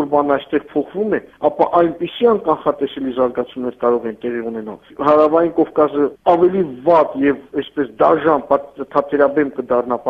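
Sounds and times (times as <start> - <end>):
man speaking over telephone: 0.0 - 10.0.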